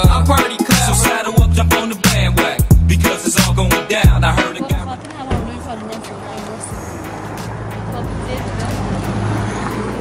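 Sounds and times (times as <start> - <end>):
indistinct voices: 0.0 - 8.9
vehicle engine humming: 0.0 - 10.0.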